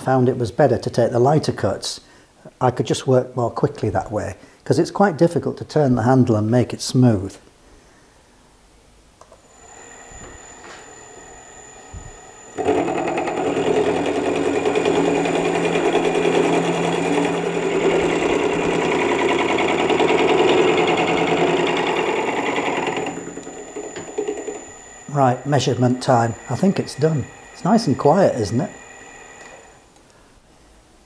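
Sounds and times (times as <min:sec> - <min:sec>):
milling machine running: 0:09.5 - 0:29.9
end mill cutting metal: 0:09.6 - 0:29.9.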